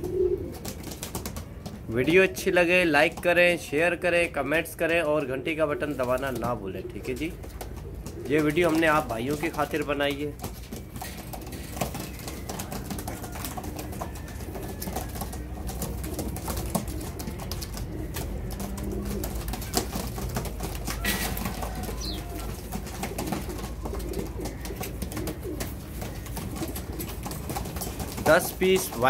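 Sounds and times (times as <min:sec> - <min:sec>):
pigeons cooing: 0:00.0 - 0:29.0.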